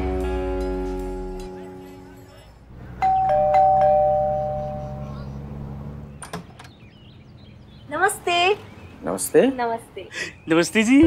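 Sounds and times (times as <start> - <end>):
two-tone doorbell chime: 3.0 - 5.0.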